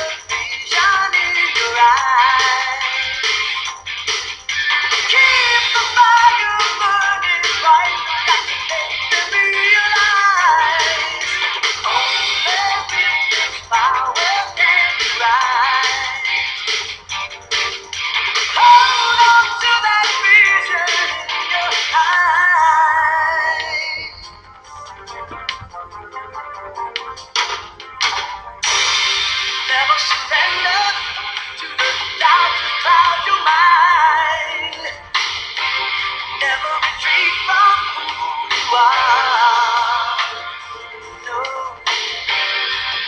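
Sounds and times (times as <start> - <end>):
person singing: 0.0 - 3.3, 5.0 - 16.6, 18.5 - 24.3, 29.6 - 35.1, 36.4 - 42.1
music: 0.0 - 43.0.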